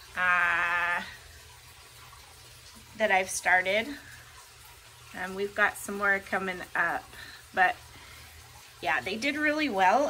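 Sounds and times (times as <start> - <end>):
faint background hum and hiss: 0.0 - 10.0.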